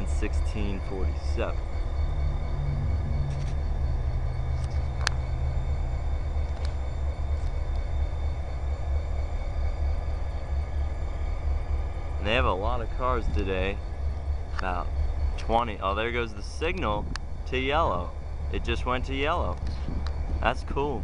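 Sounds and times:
diesel locomotive engines idling: 0.0 - 21.0
low hum: 0.0 - 21.0.

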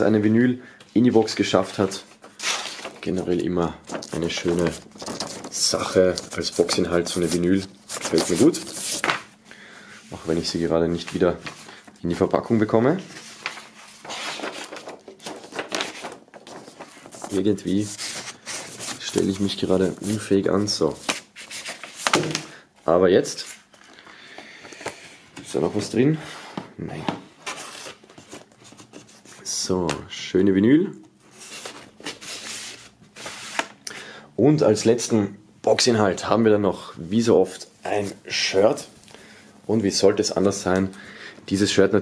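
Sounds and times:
paper sleeve rustling against record: 1.0 - 9.3, 10.1 - 22.5, 27.4 - 29.9, 31.3 - 33.8.

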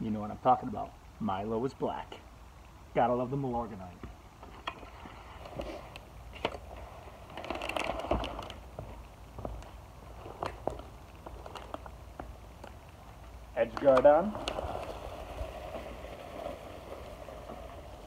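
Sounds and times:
rustling on grass: 3.7 - 18.0.

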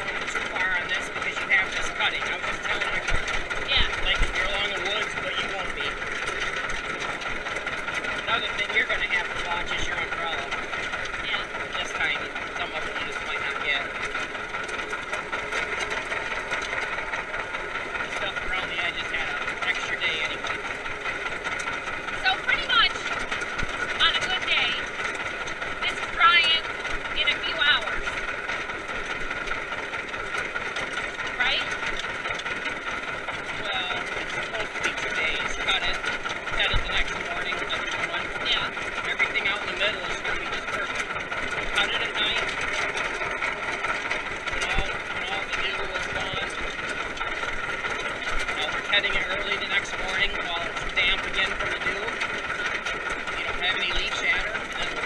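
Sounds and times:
indistinct voices: 0.0 - 21.2, 22.0 - 28.5, 33.4 - 55.0
tractor engine running: 0.0 - 55.0.

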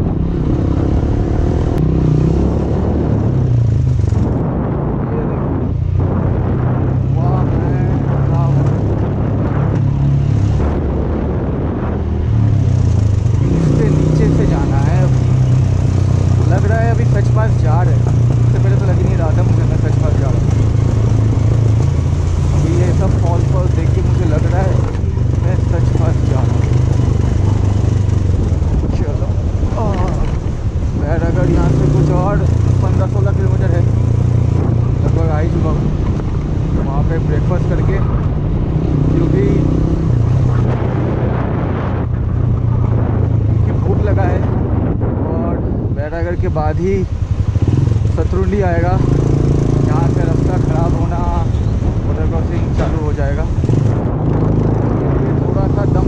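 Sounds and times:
motorcycle engine running: 0.0 - 56.0
person speaking: 28.7 - 30.4.

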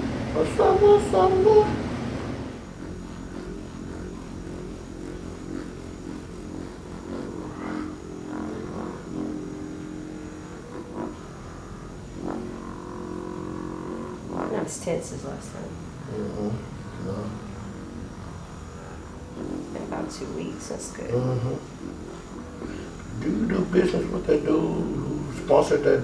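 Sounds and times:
massage gun buzzing and hammering: 2.6 - 16.5.

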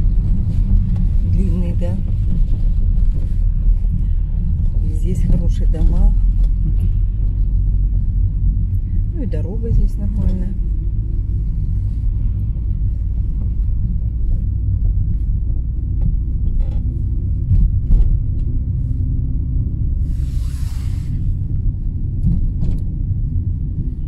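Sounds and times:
car cabin road rumble: 0.0 - 24.0
hissing swish: 20.1 - 21.3.

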